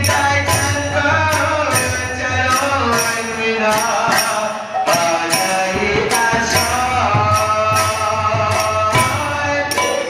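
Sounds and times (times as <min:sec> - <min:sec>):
man singing into a microphone: 0:00.0 - 0:10.0
metal percussion strikes: 0:00.0 - 0:10.0.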